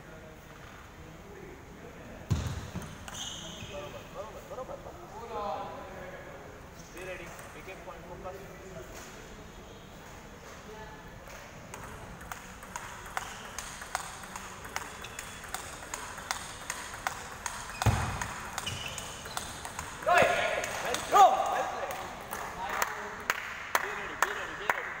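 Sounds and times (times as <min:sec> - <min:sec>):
table tennis balls clicking: 0:02.8 - 0:03.2, 0:07.0 - 0:07.8, 0:11.4 - 0:22.5.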